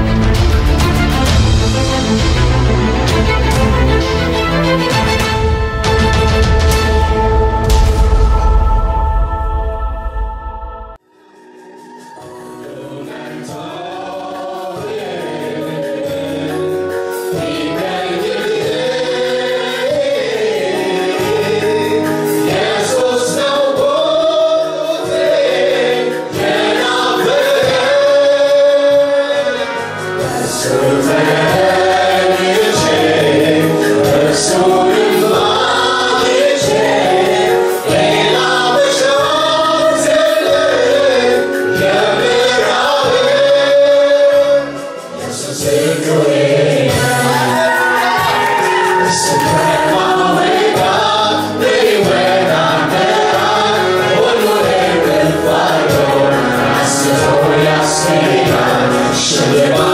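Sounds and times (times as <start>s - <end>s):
female backing singers: 11.6s - 59.9s
gospel song with male lead singer: 12.2s - 59.9s.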